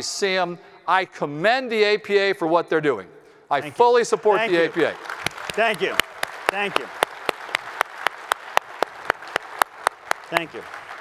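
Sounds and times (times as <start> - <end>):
crowd applauding: 4.3 - 11.0
close hands clapping sharply: 4.5 - 11.0.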